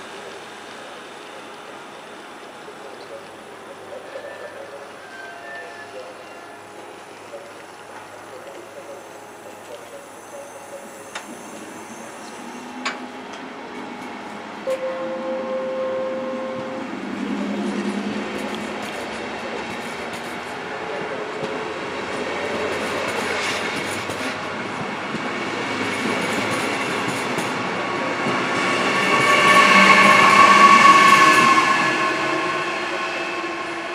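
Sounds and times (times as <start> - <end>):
electric locomotive whine: 0.0 - 33.9
train wheels rolling: 2.2 - 14.9, 16.6 - 33.9.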